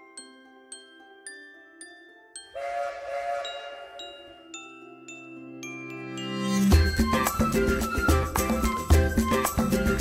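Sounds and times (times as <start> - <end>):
light glockenspiel music: 0.0 - 10.0
cartoon steam train whistle: 2.6 - 4.3.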